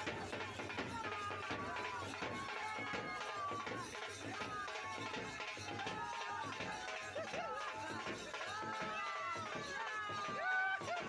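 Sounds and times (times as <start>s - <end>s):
large crowd noise: 0.0s - 11.0s.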